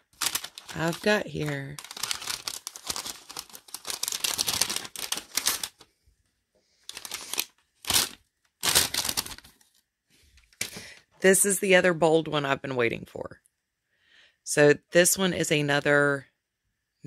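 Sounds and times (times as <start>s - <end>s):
paper gift bag crinkling: 0.0s - 5.9s, 6.8s - 9.7s.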